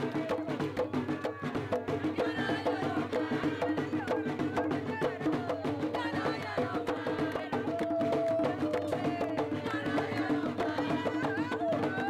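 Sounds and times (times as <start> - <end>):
drums and percussion strikes: 0.0 - 12.0
voices singing: 0.0 - 12.0.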